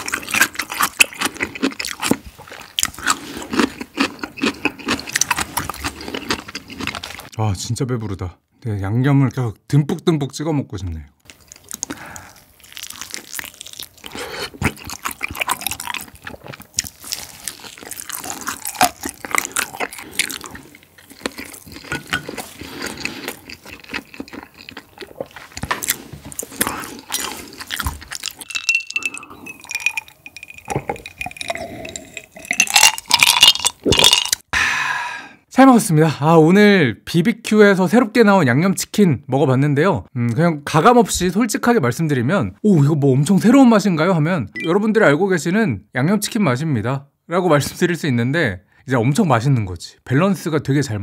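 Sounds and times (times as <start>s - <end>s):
wet crunchy chewing: 0.0s - 7.3s, 11.2s - 34.4s
glass clink: 28.5s - 34.3s
drinking from a glass: 28.5s - 34.4s.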